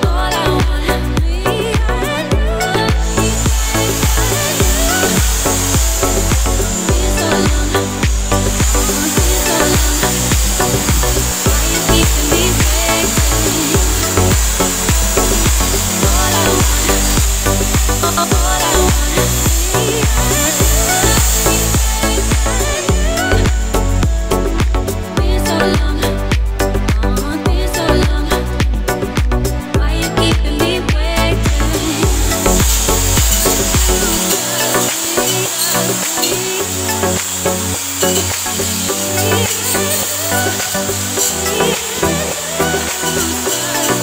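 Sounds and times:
background music with beat: 0.0s - 44.0s
electric drill whirring: 0.0s - 44.0s.

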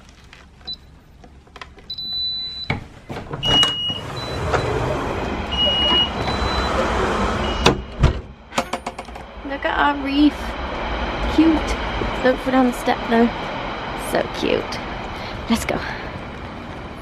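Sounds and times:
alarm exit-delay beeps: 1.9s - 2.8s, 3.4s - 4.8s, 5.5s - 6.8s
door clunking: 2.7s - 9.2s
rush of outdoor noise: 3.6s - 17.0s
alarm keypad beeping: 5.5s - 6.8s.

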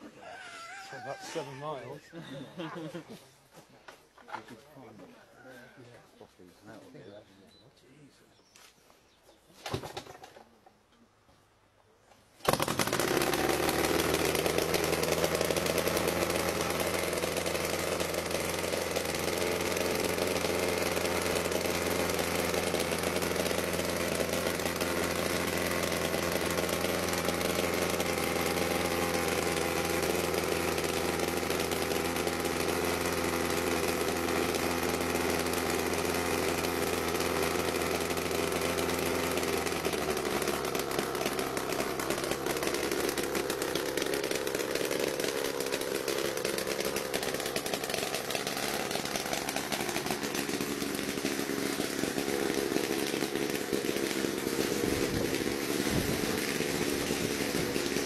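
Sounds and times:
small helicopter engine drone: 12.4s - 58.0s.

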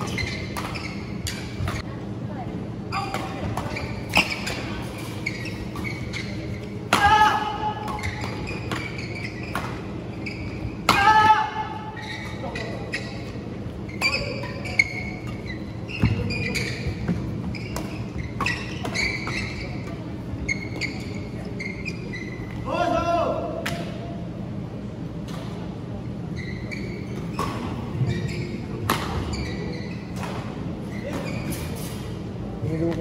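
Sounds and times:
shoes squeaking on floor: 0.0s - 1.9s, 2.9s - 6.8s, 7.8s - 10.8s, 11.8s - 22.7s, 26.3s - 32.0s
rackets striking shuttlecock: 28.8s - 29.3s.

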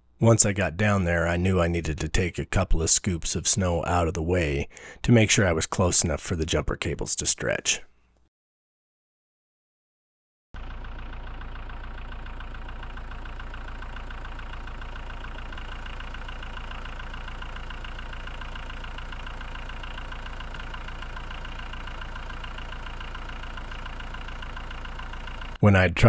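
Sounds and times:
tractor diesel engine idling: 10.6s - 25.6s.

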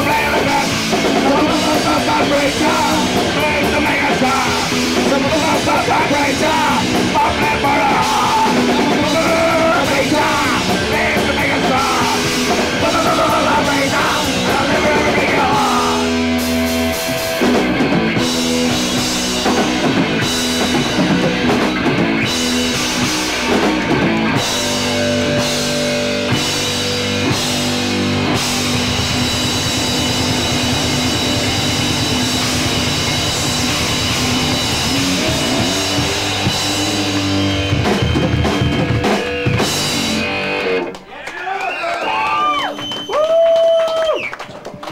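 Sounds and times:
live rock band playing: 0.0s - 41.1s.

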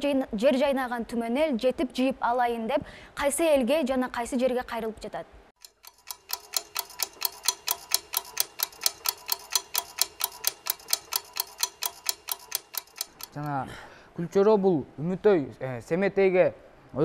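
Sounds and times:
rapid timer ticking: 5.6s - 13.6s.

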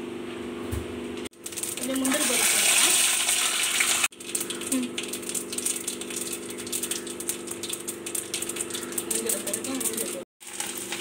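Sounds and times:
nuts sizzling in oil: 1.4s - 11.0s.

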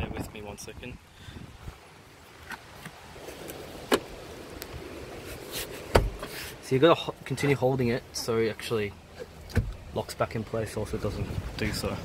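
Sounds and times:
seat back clicks and knocks: 2.4s - 4.1s, 5.5s - 6.4s, 9.4s - 9.8s.

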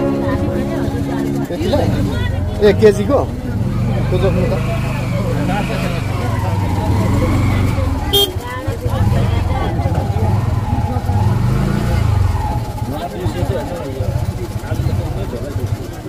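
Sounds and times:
people talking: 0.0s - 16.0s.

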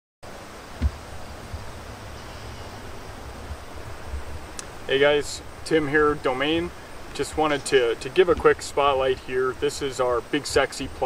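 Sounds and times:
wind buffeting microphone: 0.3s - 11.0s
brief thump: 0.8s - 1.6s.

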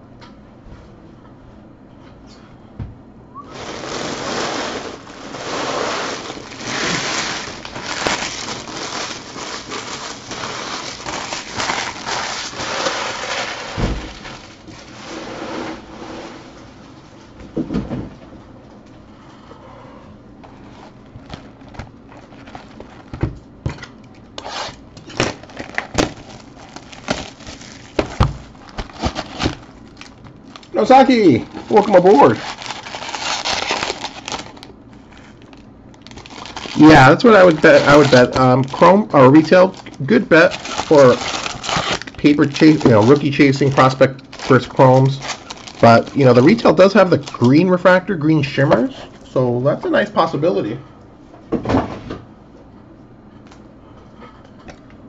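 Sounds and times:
foil wrappers crinkling: 3.5s - 15.2s, 20.5s - 23.3s, 24.0s - 48.9s.

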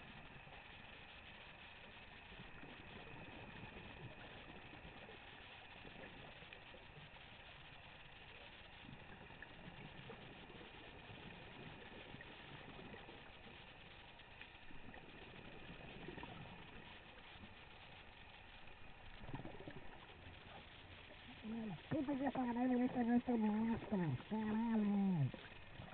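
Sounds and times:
muffled underwater hiss: 0.0s - 25.9s
regulator bubbles gurgling: 0.0s - 25.9s.

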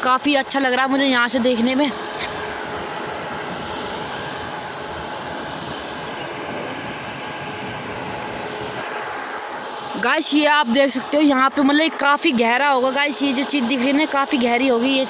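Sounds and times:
machinery drone: 0.0s - 15.0s.

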